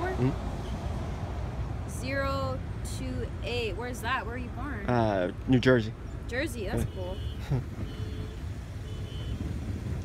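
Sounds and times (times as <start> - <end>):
low rumble of vehicles: 0.0 - 10.0.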